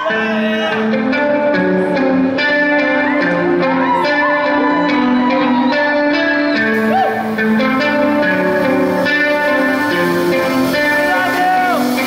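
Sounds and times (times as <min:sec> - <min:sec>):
acoustic and electric guitars: 0:00.0 - 0:12.0.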